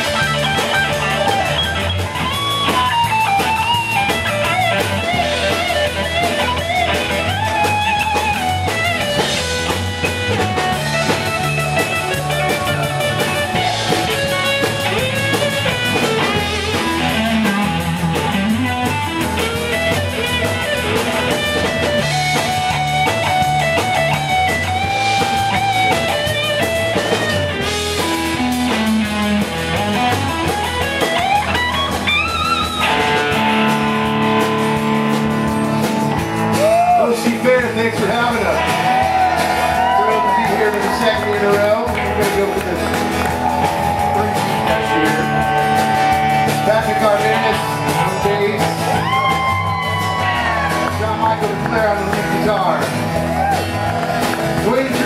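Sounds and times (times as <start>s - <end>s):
electric guitar solo: 0.0s - 55.0s
live rock band playing: 0.0s - 55.0s.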